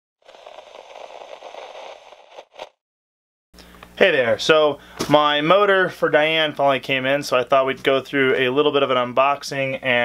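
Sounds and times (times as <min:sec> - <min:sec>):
static crackling noise: 0:00.2 - 0:02.8.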